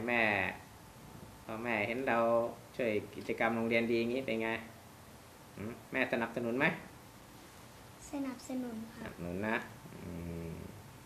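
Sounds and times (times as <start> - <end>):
man speaking: 0.0 - 0.6, 1.5 - 4.7, 5.6 - 6.9, 9.0 - 9.8.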